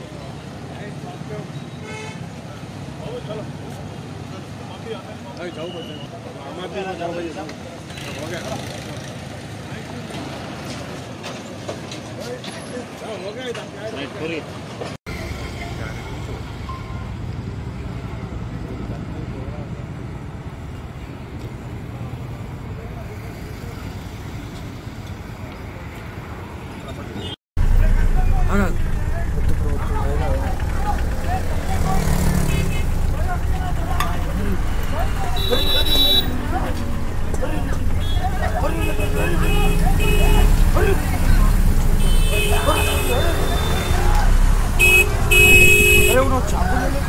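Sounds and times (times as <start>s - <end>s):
roadside traffic rumble: 0.0s - 47.0s
people talking: 26.8s - 47.0s
vehicle horn toot: 34.6s - 36.5s, 37.8s - 41.0s, 41.9s - 44.2s, 44.8s - 46.4s.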